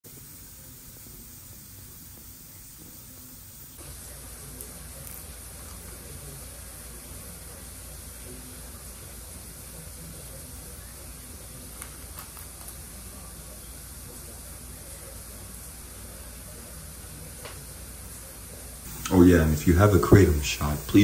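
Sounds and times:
steady background hiss: 0:00.1 - 0:21.0.

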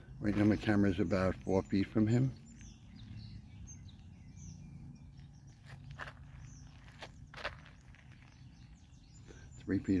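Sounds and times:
footsteps on gravel: 0:00.1 - 0:04.2, 0:05.1 - 0:10.0.

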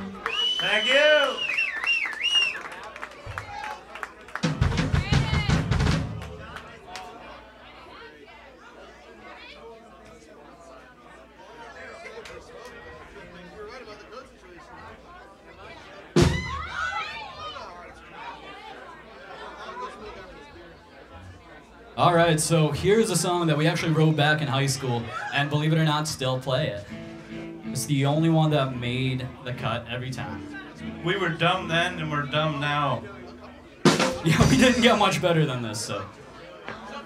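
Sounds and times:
people chattering: 0:00.0 - 0:37.0.

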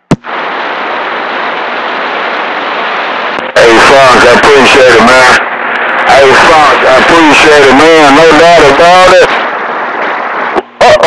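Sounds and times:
radio static hiss: 0:00.0 - 0:11.0.

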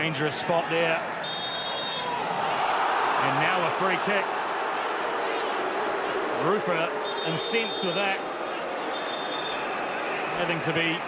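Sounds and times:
stadium crowd noise: 0:00.0 - 0:11.0
referee's whistle blown: 0:01.2 - 0:02.2, 0:07.0 - 0:08.2, 0:08.9 - 0:09.9.

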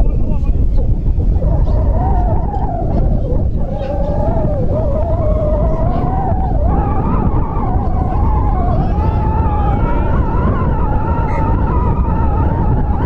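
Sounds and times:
steady wavering whine: 0:00.0 - 0:13.0
wind buffeting microphone: 0:00.0 - 0:13.0.

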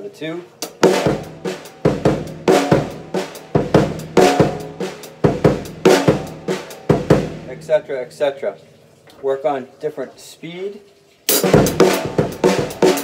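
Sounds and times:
drum kit playing funk groove: 0:00.6 - 0:08.2, 0:11.3 - 0:13.0.

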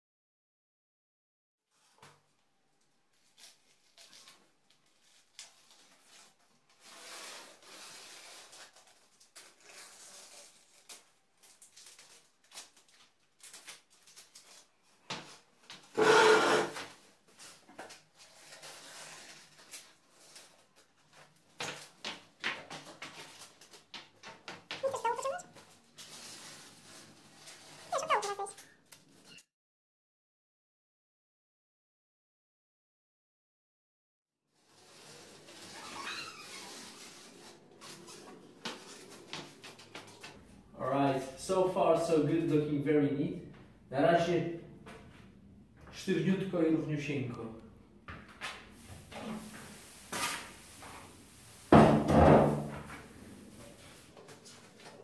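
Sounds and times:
masking tape peeling off walls: 0:03.1 - 0:29.4, 0:34.6 - 0:40.4.

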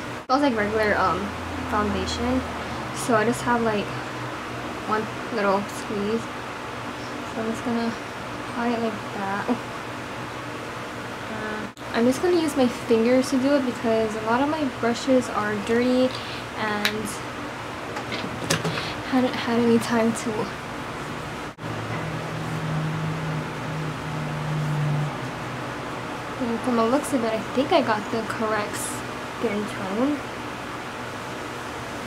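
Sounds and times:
low even hum: 0:00.0 - 0:32.0
room noise hiss: 0:00.0 - 0:32.0.

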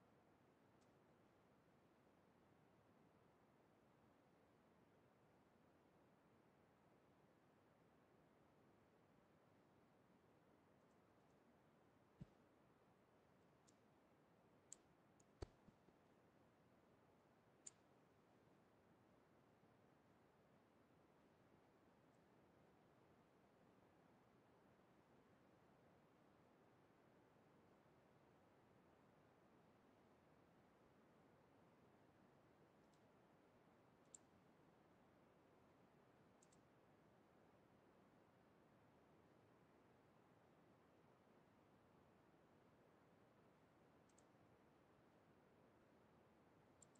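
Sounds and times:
faint sharp clicks: 0:14.7 - 0:15.8, 0:17.6 - 0:17.9, 0:32.8 - 0:33.1, 0:34.0 - 0:34.4, 0:36.4 - 0:36.7, 0:44.0 - 0:44.4
computer mouse clicks: 0:34.0 - 0:34.3, 0:36.4 - 0:36.7, 0:44.0 - 0:44.3.

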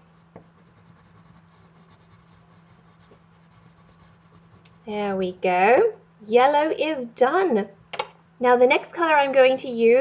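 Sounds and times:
colored pencil scratching on paper: 0:00.6 - 0:04.7.

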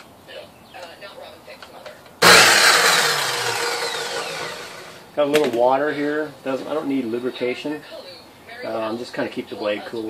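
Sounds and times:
miter saw motor whine: 0:02.2 - 0:05.0.

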